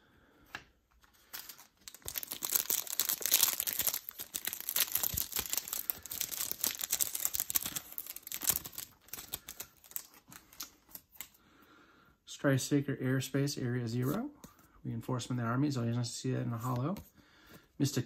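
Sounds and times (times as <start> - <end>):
foil wrapper crinkling and tearing: 1.2 - 11.2.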